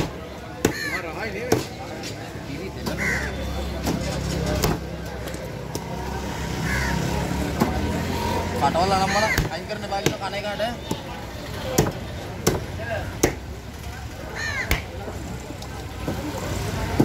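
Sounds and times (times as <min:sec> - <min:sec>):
cleaver chopping fish on wood: 0:00.0 - 0:01.8, 0:04.6 - 0:04.9, 0:09.3 - 0:10.3, 0:11.7 - 0:13.5, 0:14.6 - 0:14.9.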